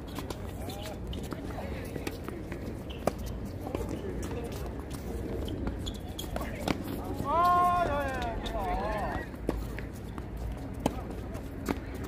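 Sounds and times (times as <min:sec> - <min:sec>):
footsteps on hard court: 0:00.0 - 0:12.0.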